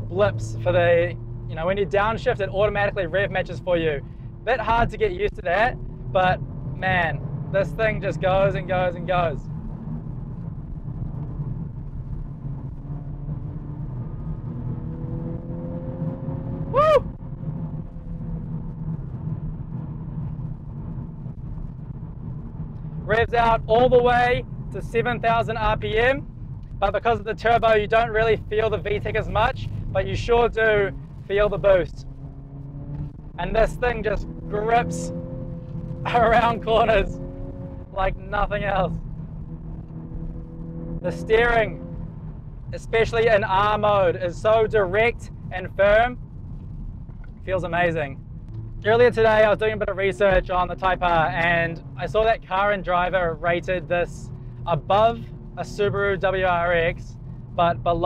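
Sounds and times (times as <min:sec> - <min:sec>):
car engine rumble: 0:00.0 - 0:58.0
road noise: 0:00.0 - 0:58.0.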